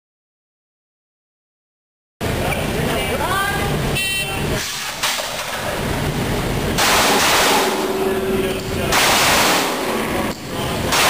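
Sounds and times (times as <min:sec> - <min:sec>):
loud rushing noise: 0:02.2 - 0:11.0.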